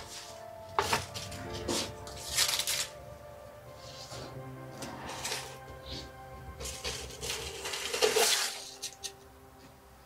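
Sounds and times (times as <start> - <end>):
soft background music: 0.0 - 10.0
potted tree rubbing and rustling: 3.7 - 9.0.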